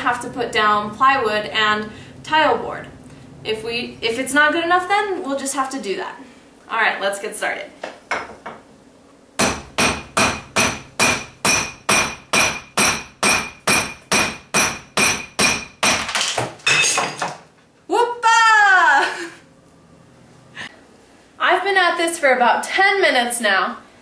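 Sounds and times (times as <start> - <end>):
hammer striking steel chisel: 9.4 - 17.1.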